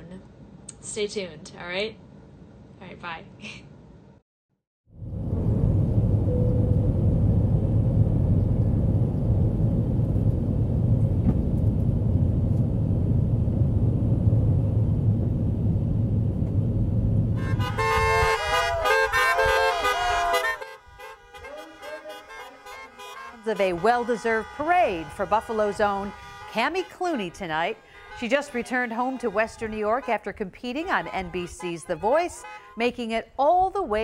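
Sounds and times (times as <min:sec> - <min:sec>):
airliner cabin rumble: 0:05.0 - 0:18.5
car horns honking: 0:17.4 - 0:33.2.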